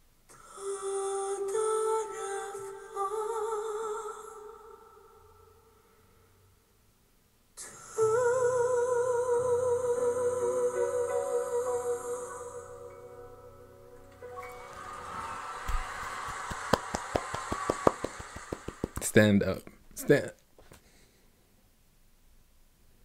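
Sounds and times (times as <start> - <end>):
soft musical accompaniment: 8.0 - 17.3
audience applause and cheering: 14.1 - 19.2.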